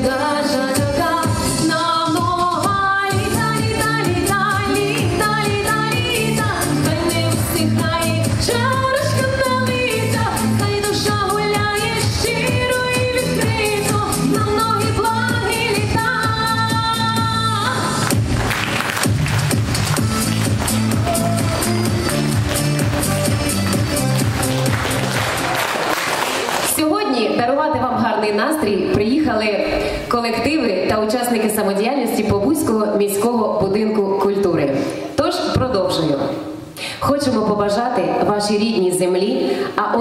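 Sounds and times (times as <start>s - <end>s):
woman singing: 0.0s - 18.1s
pop backing track with beat: 0.0s - 25.9s.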